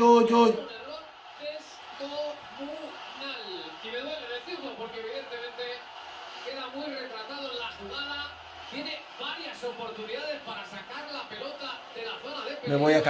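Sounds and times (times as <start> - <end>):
sports commentator talking: 0.0 - 13.0.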